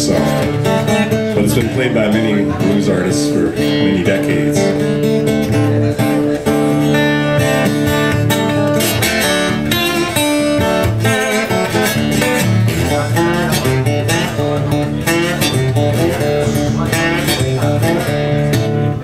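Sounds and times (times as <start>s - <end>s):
blues slide guitar: 0.0s - 19.0s.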